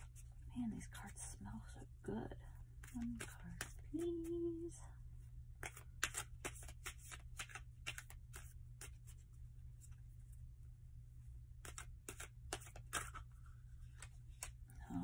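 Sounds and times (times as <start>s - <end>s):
steady low hum: 0.0s - 15.0s
cards being shuffled: 2.8s - 4.7s, 5.6s - 10.0s, 11.6s - 15.0s.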